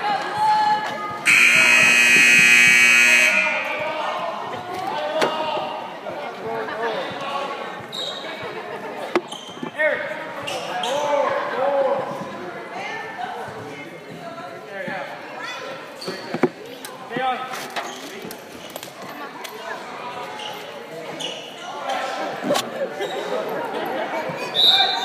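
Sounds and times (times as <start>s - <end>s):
scoreboard buzzer: 1.2s - 3.7s
basketball bouncing: 1.3s - 3.0s.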